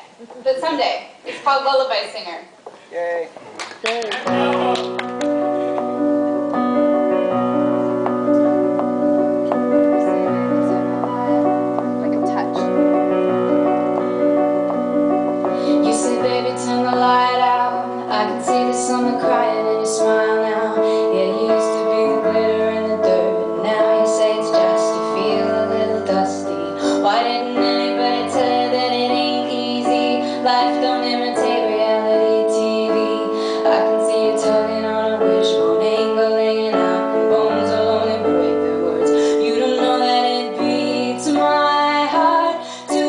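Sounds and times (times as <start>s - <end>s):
piano accompaniment: 4.0s - 43.0s
woman singing a slow ballad: 15.5s - 43.0s.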